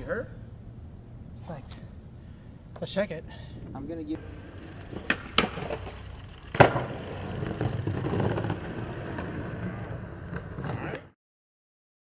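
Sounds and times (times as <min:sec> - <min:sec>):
skateboard clacks: 0:04.2 - 0:11.1
skateboard hard impact: 0:04.2 - 0:11.1
skateboard wheels rolling: 0:04.2 - 0:11.2.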